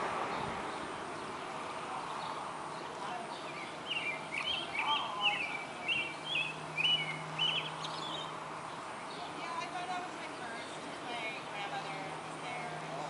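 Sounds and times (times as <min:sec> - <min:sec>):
outdoor background noise: 0:00.0 - 0:13.0
bird chirping: 0:00.3 - 0:10.9.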